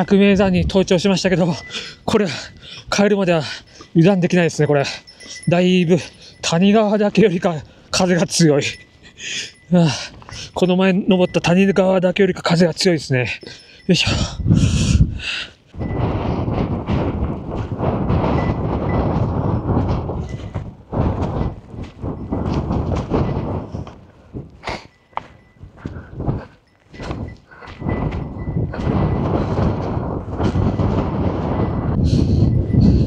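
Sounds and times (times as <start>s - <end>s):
strong wind buffeting microphone: 0.0s - 33.0s.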